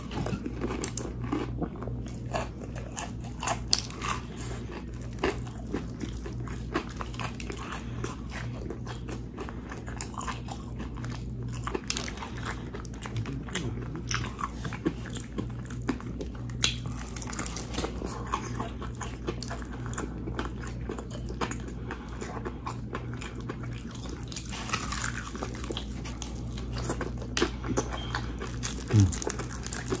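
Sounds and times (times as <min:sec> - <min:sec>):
chewing crunches: 0:00.0 - 0:30.0
fried chicken crunching: 0:00.0 - 0:30.0.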